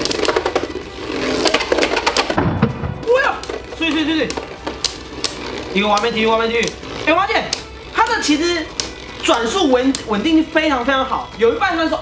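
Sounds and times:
background music: 0:00.0 - 0:12.0
spinning tops whirring: 0:00.0 - 0:12.0.

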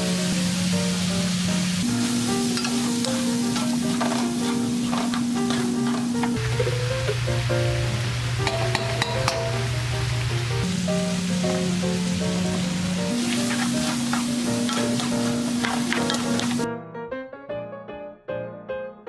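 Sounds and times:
meat sizzling in frying pan: 0:00.0 - 0:16.6
background music: 0:00.0 - 0:19.0
wooden spatulas scraping meat: 0:02.6 - 0:06.7, 0:13.1 - 0:16.6.

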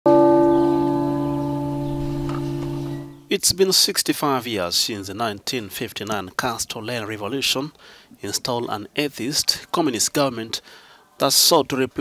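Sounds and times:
church bell ringing: 0:00.1 - 0:03.3.

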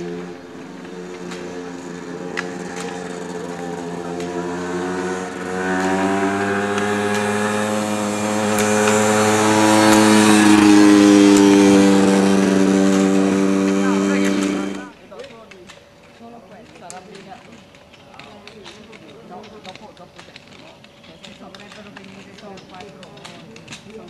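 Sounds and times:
motorcycle engine running: 0:00.0 - 0:15.0
ski poles clicking on asphalt: 0:00.0 - 0:24.0.

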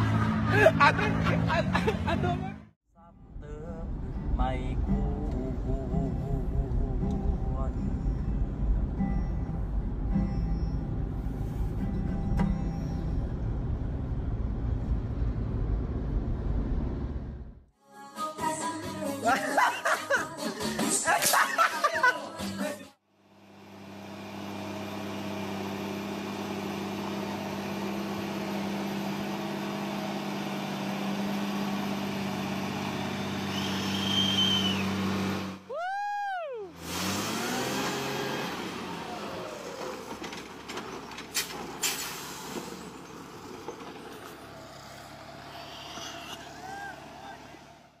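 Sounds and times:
diesel truck engine running: 0:00.0 - 0:17.7, 0:23.2 - 0:35.7, 0:36.7 - 0:48.0
high squeal: 0:09.0 - 0:13.5, 0:33.5 - 0:35.0, 0:45.5 - 0:47.0
whistle-like glide: 0:33.2 - 0:35.0.

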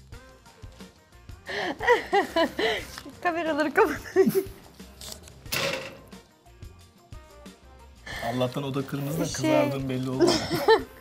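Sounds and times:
quiet background music: 0:00.0 - 0:11.0
paper crinkling: 0:04.6 - 0:05.4.

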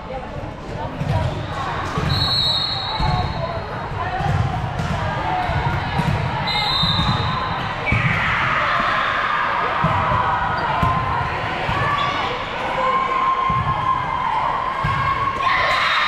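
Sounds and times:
chatter of voices in hall: 0:00.0 - 0:16.0
whistle blasts: 0:02.1 - 0:03.2, 0:06.4 - 0:08.0.

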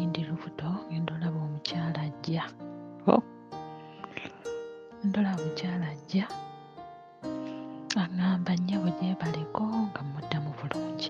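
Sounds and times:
instrumental backing: 0:02.6 - 0:11.0.

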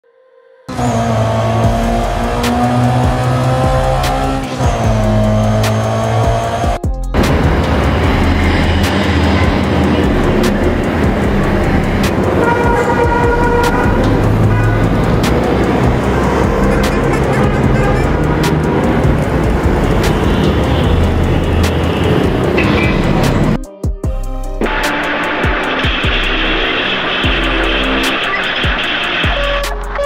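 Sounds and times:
background music: 0:00.0 - 0:30.0
bus engine: 0:00.7 - 0:23.6, 0:24.6 - 0:30.0
bus horn toots: 0:07.2 - 0:23.6, 0:24.7 - 0:30.0.

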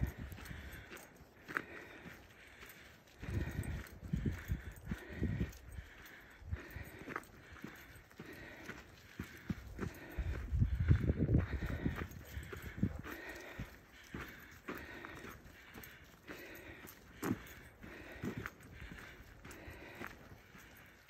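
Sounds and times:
footsteps on dirt trail: 0:00.0 - 0:21.0.

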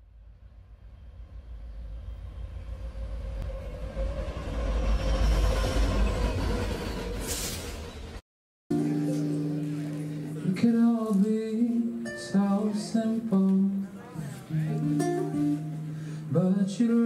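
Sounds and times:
train rumble: 0:00.7 - 0:08.2.

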